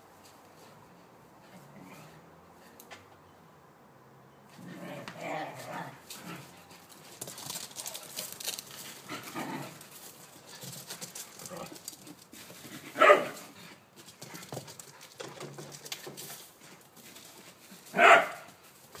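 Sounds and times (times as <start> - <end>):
rustling: 4.6 - 19.0
dog barking: 13.0 - 13.4, 17.9 - 18.5.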